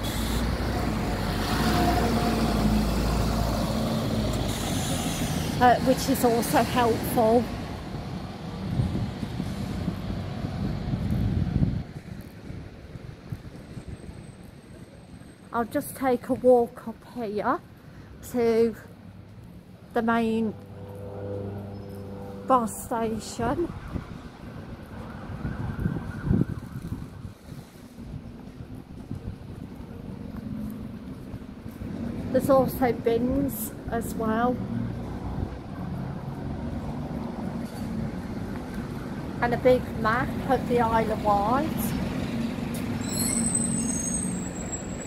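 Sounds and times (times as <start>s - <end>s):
street noise: 0.0s - 45.0s
wind buffeting microphone: 7.6s - 15.0s, 22.8s - 42.7s.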